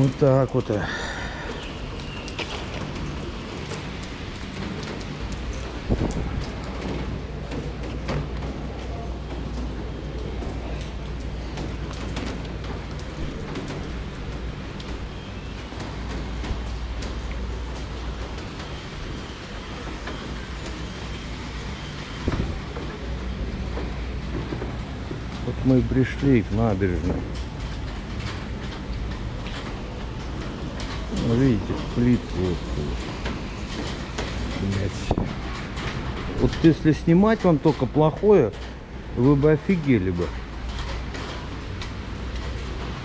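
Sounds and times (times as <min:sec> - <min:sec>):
rain on wet road: 0:00.0 - 0:43.0.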